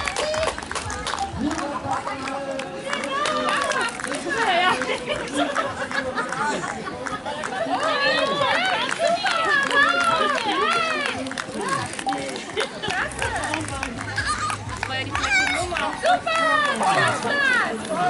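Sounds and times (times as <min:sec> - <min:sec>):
voices calling out and cheering: 0:00.0 - 0:18.0.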